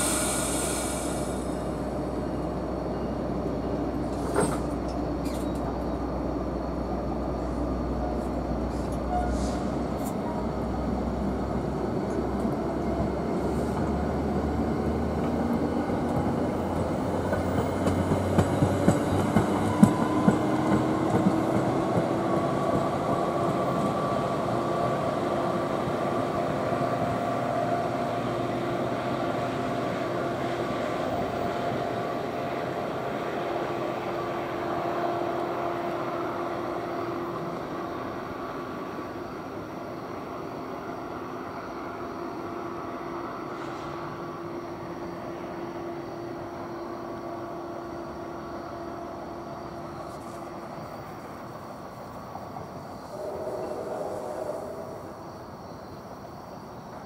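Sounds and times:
train wheels rumbling on rail: 0.0s - 57.0s
train wheels clicking and knocking: 15.2s - 23.8s
rising locomotive tones: 52.2s - 56.6s.

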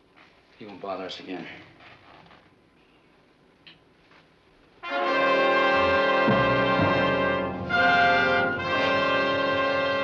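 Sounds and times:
orchestral brass chord: 4.8s - 10.0s.

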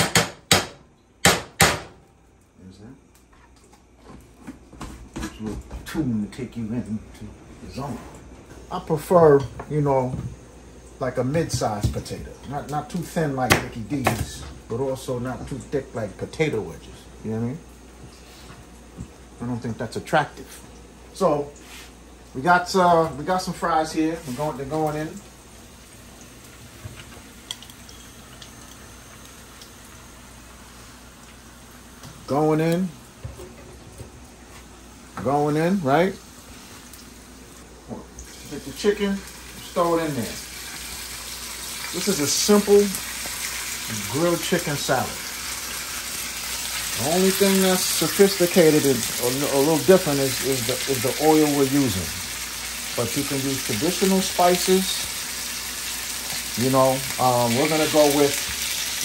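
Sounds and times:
fries sizzling in oil: 7.6s - 59.0s.

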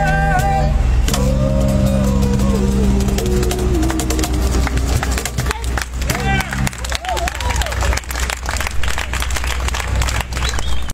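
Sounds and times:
steady low hum: 0.0s - 10.4s
crowd applauding: 3.8s - 10.9s.

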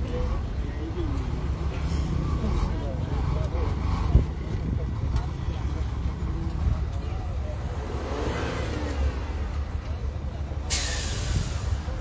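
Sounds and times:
vehicle engines idling: 0.0s - 12.0s
loud hiss: 10.7s - 12.0s.

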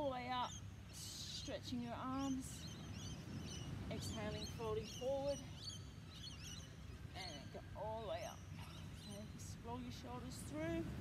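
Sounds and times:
outdoor background noise: 0.0s - 11.0s
faint high bird chirps: 0.4s - 10.3s.

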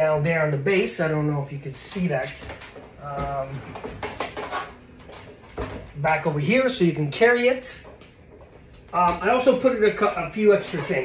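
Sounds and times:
telescope tube rubbing: 10.4s - 11.0s.

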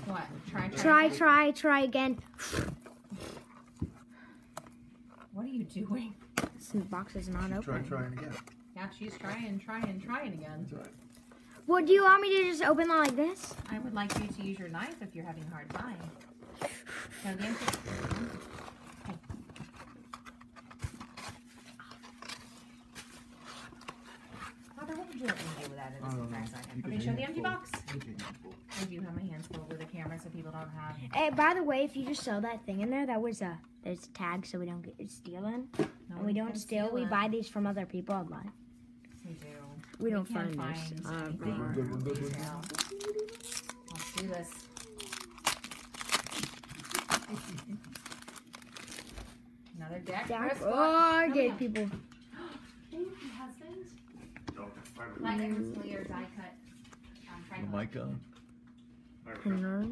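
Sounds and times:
cardboard and plastic wrap handled: 40.5s - 49.4s.

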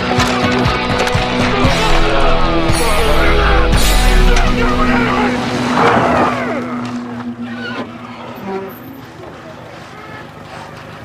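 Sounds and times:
people shouting: 0.7s - 7.7s.

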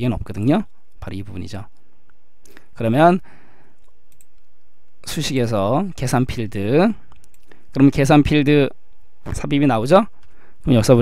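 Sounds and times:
person speaking: 0.0s - 1.8s, 5.0s - 11.0s
faint mouse clicks: 3.8s - 4.5s, 7.1s - 7.6s.

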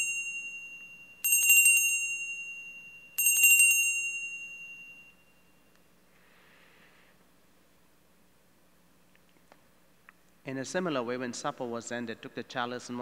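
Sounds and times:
altar bells ringing: 0.0s - 5.6s.

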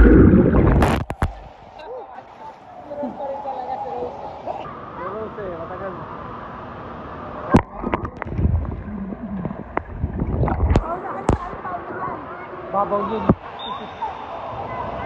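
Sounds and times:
low thumps: 0.0s - 1.5s, 7.6s - 11.5s
voices talking: 0.9s - 6.1s.

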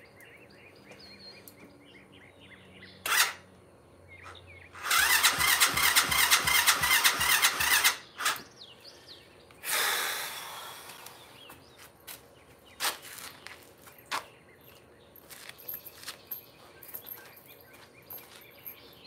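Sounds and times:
engine cranking on starter: 3.0s - 3.4s, 4.8s - 8.5s.

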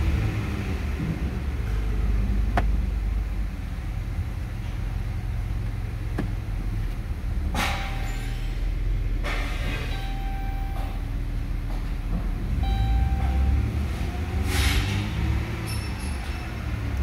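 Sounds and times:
car engine idling: 0.9s - 13.8s
reverse warning chime: 9.9s - 11.1s, 12.6s - 14.0s.

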